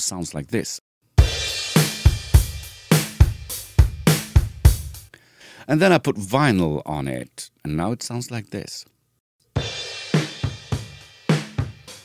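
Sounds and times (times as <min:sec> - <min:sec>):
kick and snare drum groove: 0:01.2 - 0:05.1, 0:09.6 - 0:12.0.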